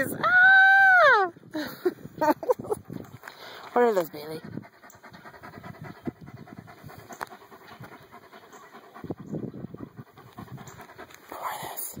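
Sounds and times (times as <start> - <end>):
dog panting rapidly: 2.6 - 12.0.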